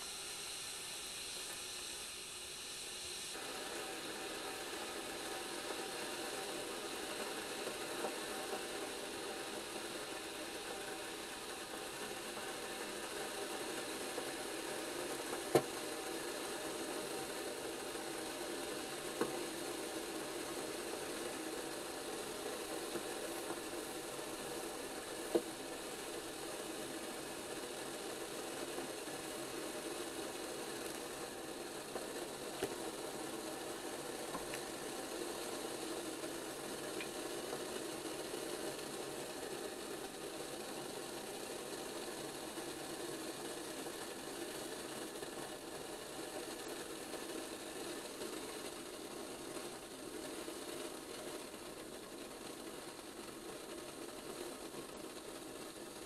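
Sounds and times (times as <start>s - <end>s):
kettle water rushing: 0.0s - 56.0s.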